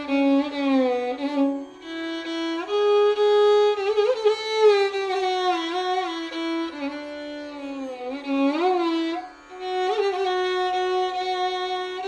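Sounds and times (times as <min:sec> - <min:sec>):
solo violin melody: 0:00.0 - 0:12.0.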